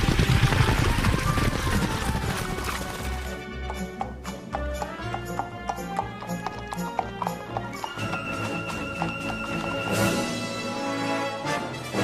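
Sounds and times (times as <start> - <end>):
horse hooves clip-clopping: 0.0 - 10.3
background music: 1.0 - 12.0.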